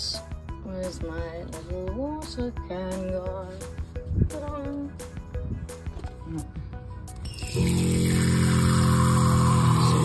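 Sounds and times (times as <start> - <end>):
tap water running into metal pot: 7.5 - 9.9
steady electric hum: 7.5 - 10.0.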